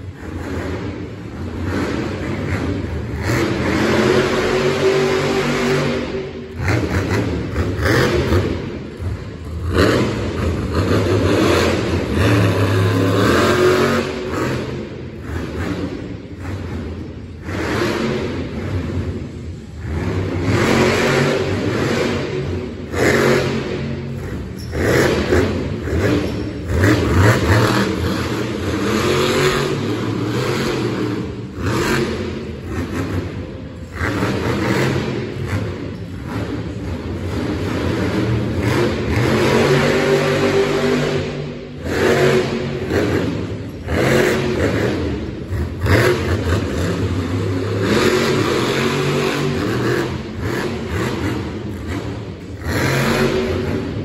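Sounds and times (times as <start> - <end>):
truck engine revving: 0.0 - 54.0.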